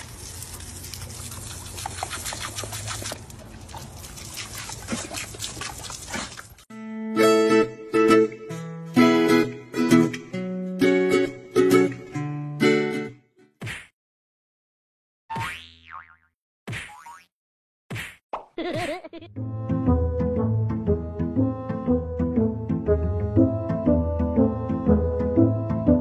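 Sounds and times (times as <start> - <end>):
dog snapping at water: 1.6 - 6.6
cartoon boing: 15.3 - 17.3.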